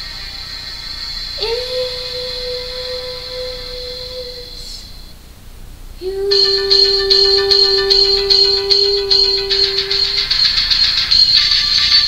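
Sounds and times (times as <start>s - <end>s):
girl singing held note: 1.4s - 5.0s.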